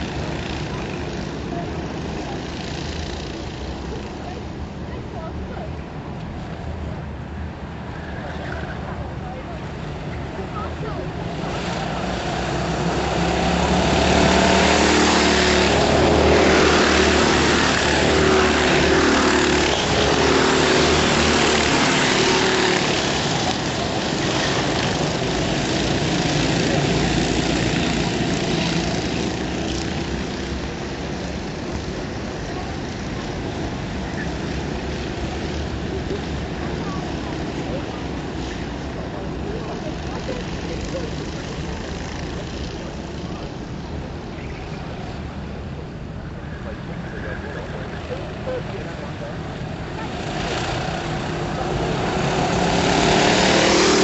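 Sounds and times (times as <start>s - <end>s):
kart engine at full throttle: 0.0s - 54.0s.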